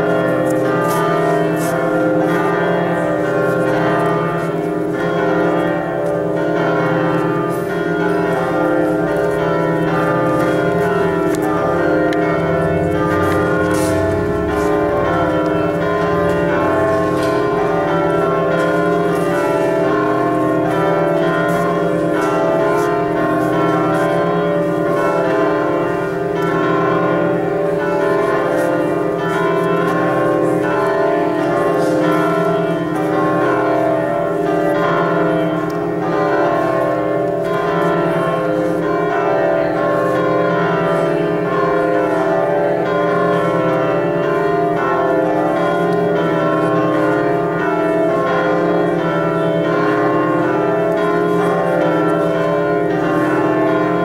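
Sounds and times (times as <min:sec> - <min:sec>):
church bells ringing: 0:00.0 - 0:54.0.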